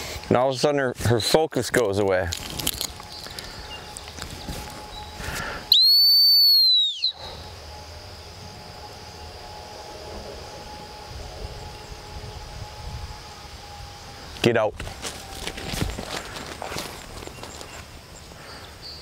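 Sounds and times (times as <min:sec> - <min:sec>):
dog whistle blast: 0:05.7 - 0:07.3.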